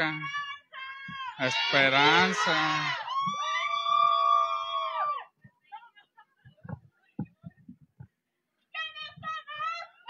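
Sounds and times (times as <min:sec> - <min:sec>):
soft low thumps: 0:06.4 - 0:08.2.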